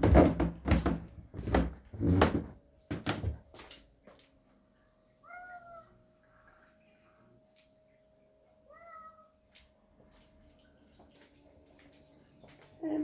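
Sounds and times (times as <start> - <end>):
cat meowing: 5.2 - 6.0, 8.7 - 9.4.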